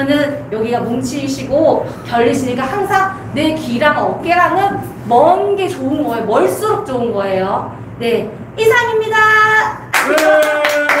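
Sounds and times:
rapid hand clapping: 9.9s - 11.0s.

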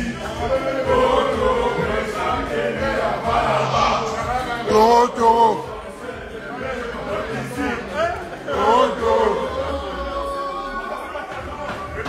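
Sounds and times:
men chanting together: 0.0s - 11.6s
music: 0.0s - 12.0s.

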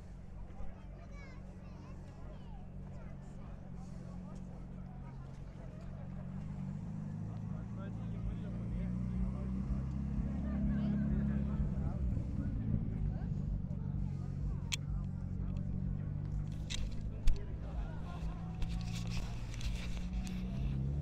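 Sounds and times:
car engine running: 0.0s - 21.0s
people talking: 0.0s - 21.0s.

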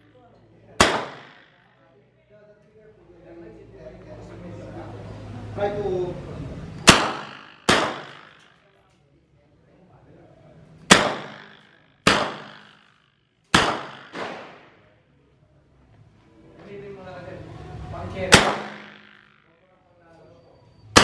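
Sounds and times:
submachine gun single shots: 0.8s - 1.6s, 6.9s - 8.4s, 10.9s - 12.9s, 13.5s - 14.7s, 18.3s - 19.3s.

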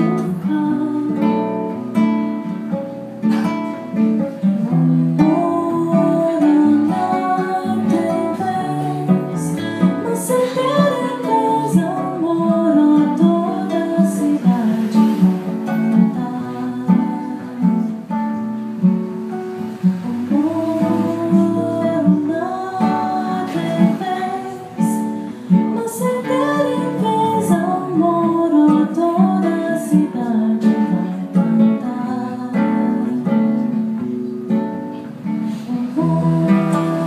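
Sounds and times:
classical guitars playing: 0.0s - 37.0s.

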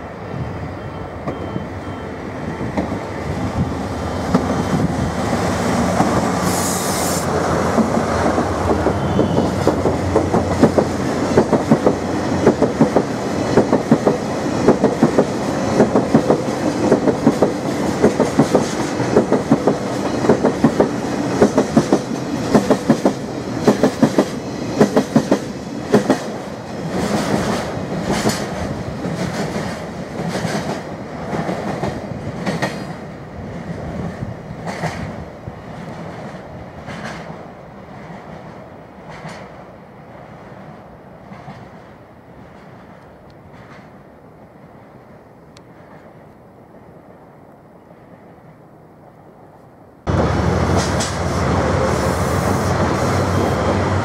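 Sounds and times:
train wheels clattering over rail joints: 8.6s - 33.0s
locomotive engine drone: 50.1s - 54.0s.

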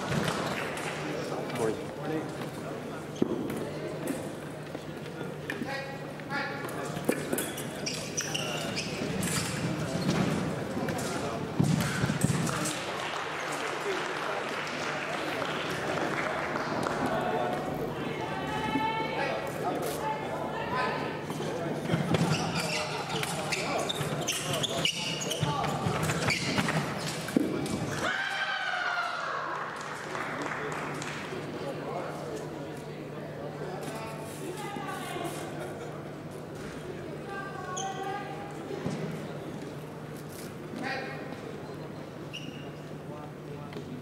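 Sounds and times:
chatter of many voices: 0.0s - 44.0s.

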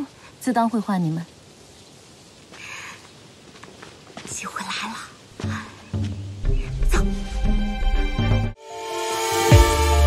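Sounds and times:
woman whispering: 4.3s - 5.8s, 6.5s - 7.2s.

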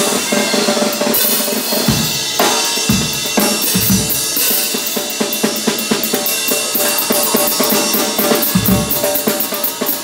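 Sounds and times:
cymbals ringing: 0.0s - 10.0s
drum kit playing: 0.1s - 10.0s
bass drum hit: 1.9s - 4.4s, 8.6s - 9.1s.

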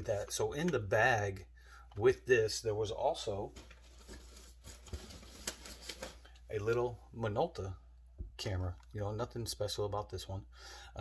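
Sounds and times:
rustling handling noise: 3.1s - 7.0s.

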